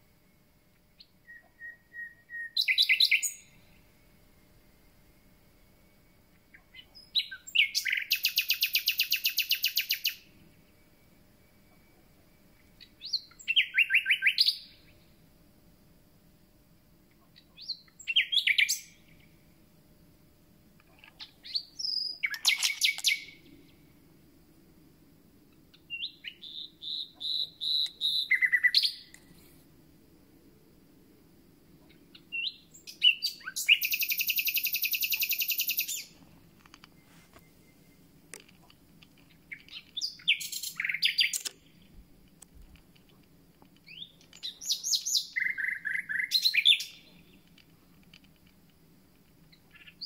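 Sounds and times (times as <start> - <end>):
nightingale singing: 0.7 - 4.0, 6.0 - 15.2, 17.1 - 19.4, 20.8 - 24.0, 25.5 - 29.3, 31.7 - 42.5, 43.1 - 48.0, 49.4 - 50.0.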